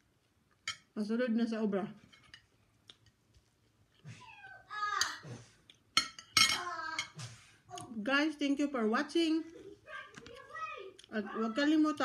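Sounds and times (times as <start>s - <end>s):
cutlery clinking on ceramic plate: 0.6s - 0.9s, 2.0s - 2.5s, 6.0s - 7.2s.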